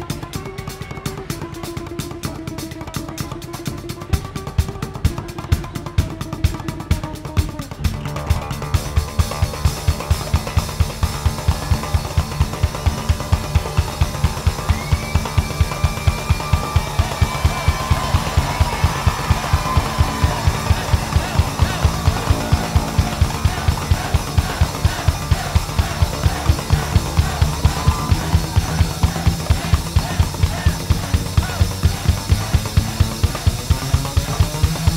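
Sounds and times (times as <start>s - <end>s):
drumsticks beating double bass strings: 0.0s - 34.9s
high held note: 17.4s - 29.6s.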